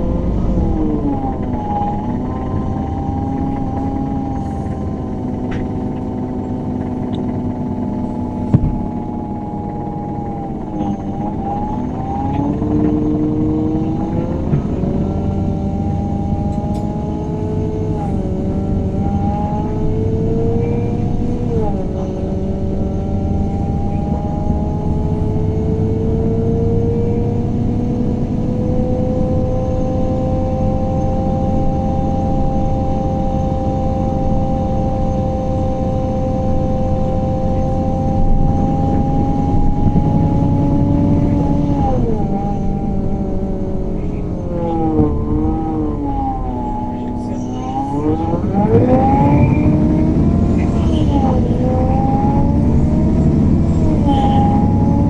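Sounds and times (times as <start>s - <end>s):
bus engine and gearbox whine: 0.0s - 55.0s.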